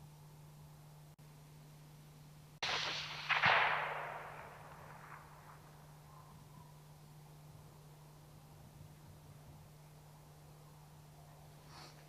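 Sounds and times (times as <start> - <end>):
sudden crack: 2.6 - 5.7
rifle shot echoing: 2.6 - 6.2.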